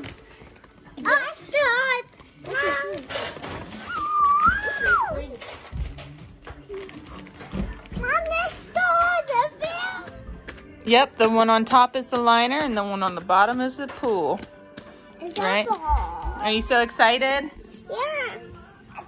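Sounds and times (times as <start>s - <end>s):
child making sing-song sounds: 8.0s - 10.2s, 17.9s - 18.4s.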